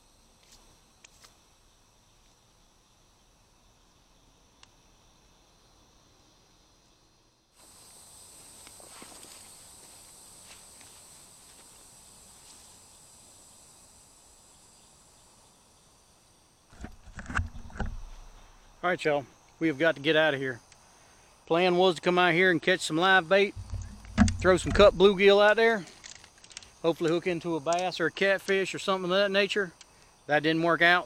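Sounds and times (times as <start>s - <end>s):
insect chorus trilling: 0.0s - 31.0s.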